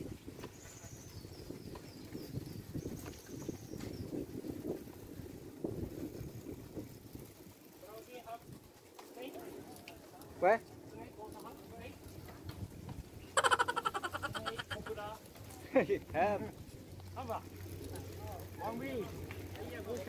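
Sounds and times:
bicycle riding rumble: 0.0s - 20.0s
birds calling: 13.1s - 15.2s.

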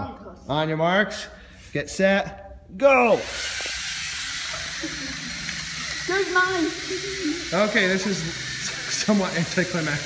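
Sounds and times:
toy robot motors whirring: 3.2s - 10.0s.

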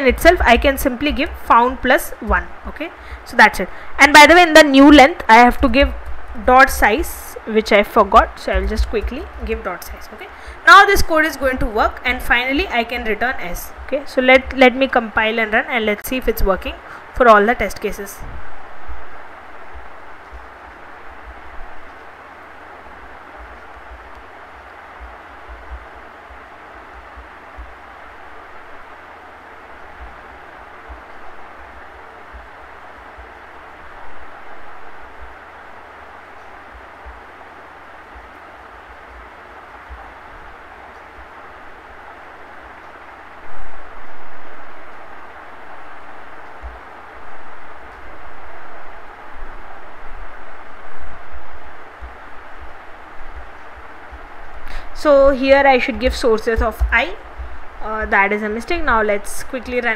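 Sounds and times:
background hiss: 0.0s - 59.9s.

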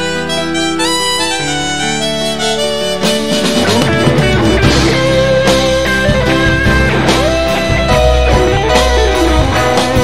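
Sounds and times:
electric guitar quick notes: 0.0s - 10.0s
live band instrumental: 0.0s - 10.0s.

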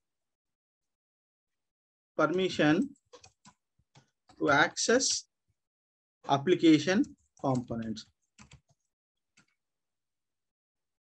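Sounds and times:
keyboard key presses: 8.4s - 8.8s.

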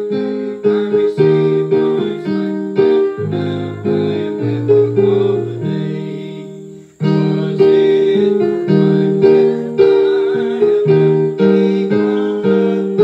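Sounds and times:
piano playing hymn chords: 0.0s - 13.0s.

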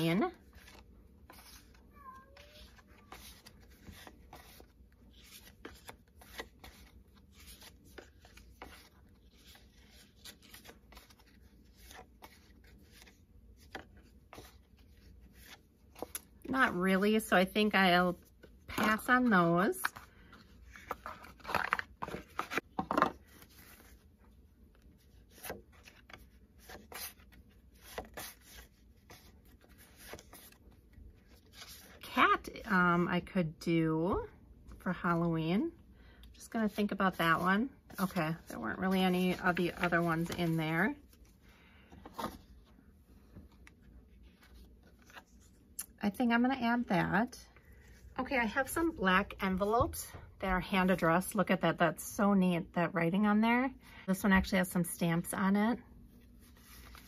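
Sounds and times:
paper flashcards rustling: 0.0s - 32.0s, 36.6s - 45.8s, 56.1s - 57.0s
faint high cry: 1.9s - 2.7s.

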